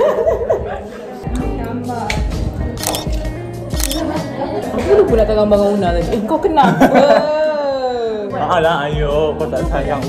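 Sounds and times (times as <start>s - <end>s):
camera shutter click: 2.8s - 4.1s.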